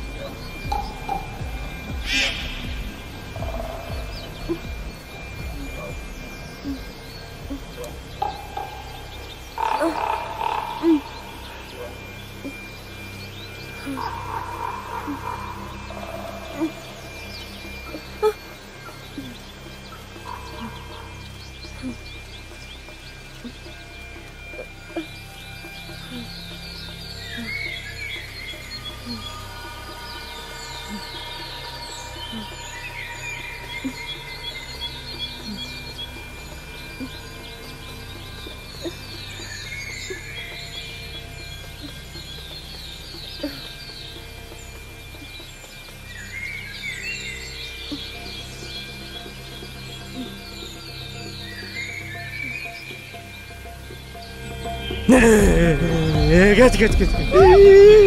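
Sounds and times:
birds chirping: 0.0s - 58.0s
low music drone: 0.0s - 58.0s.

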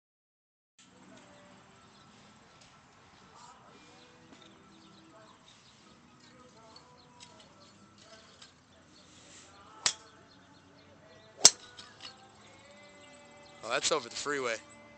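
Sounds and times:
golf club striking ball: 9.8s - 10.2s, 11.4s - 12.1s.

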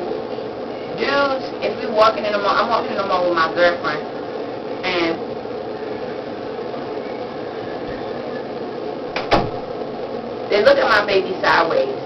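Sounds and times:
fan whirring: 0.0s - 12.0s.

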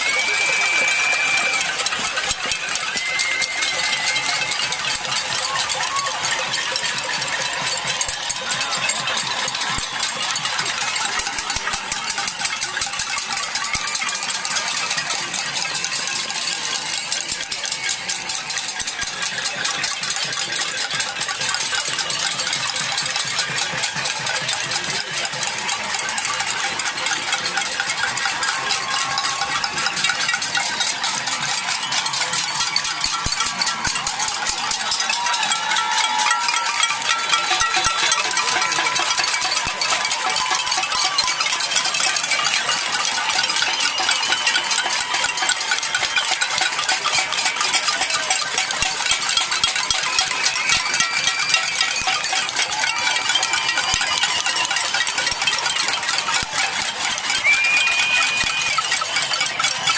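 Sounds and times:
crowd banging pots and pans: 0.0s - 59.9s.

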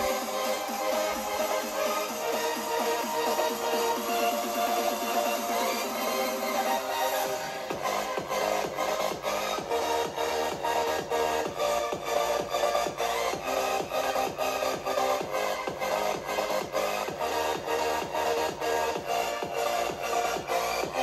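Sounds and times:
electronic dance music from small speakers: 0.0s - 21.0s.

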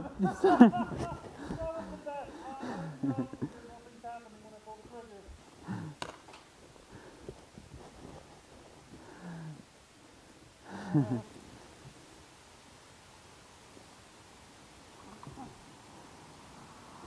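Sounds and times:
faint voices talking and calling: 0.0s - 7.6s.

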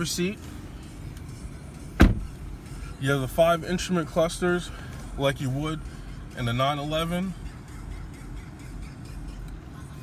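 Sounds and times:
car door shutting: 1.9s - 2.4s.

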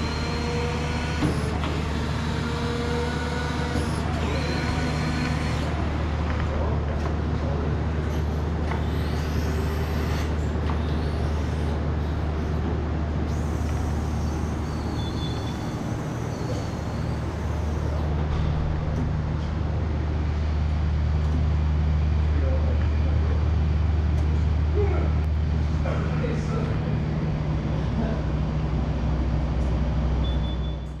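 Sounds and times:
electric forklift motor hum: 0.0s - 31.0s.

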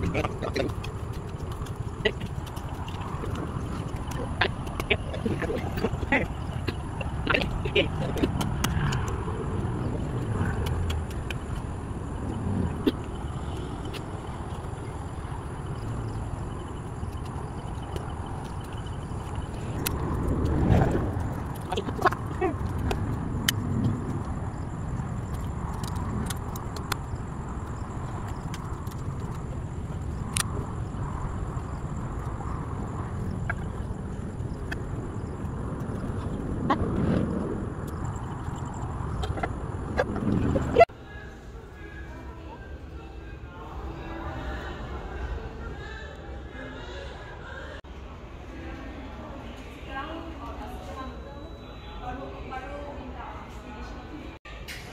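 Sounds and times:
steady low rumble: 0.0s - 41.0s.

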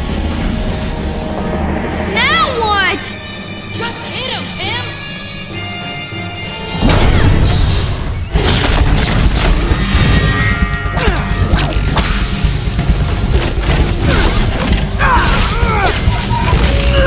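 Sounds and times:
film score music: 0.0s - 17.0s.

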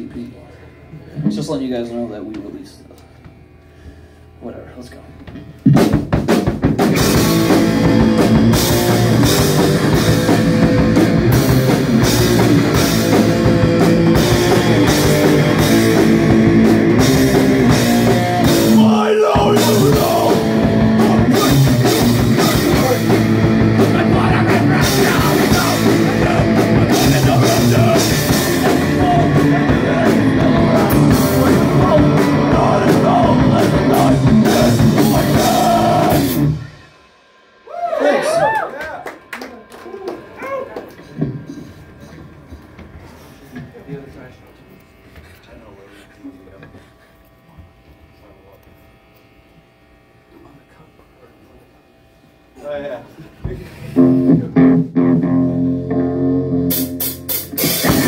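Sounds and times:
heavy rock band playing live: 5.6s - 38.4s, 54.0s - 58.0s
vocalist shouting into microphone: 18.7s - 21.7s.

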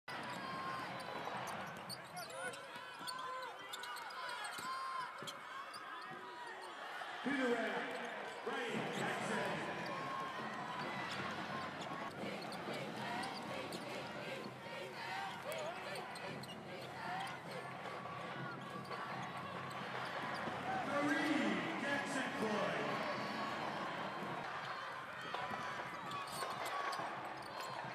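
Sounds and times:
crowd chatter: 0.1s - 27.9s
sneakers squeaking on floor: 0.2s - 6.8s, 7.8s - 27.9s.

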